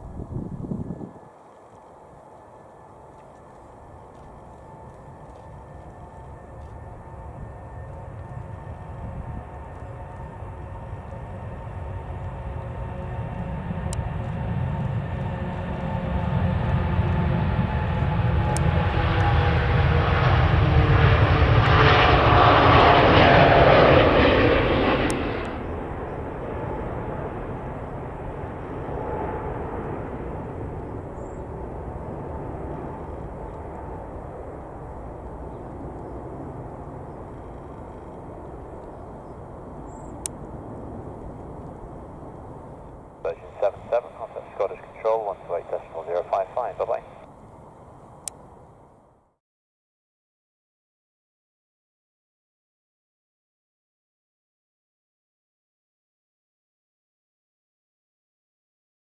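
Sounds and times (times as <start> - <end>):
jet engine whine falling in pitch: 0.0 - 48.0
jet engines roaring at takeoff: 0.0 - 49.1.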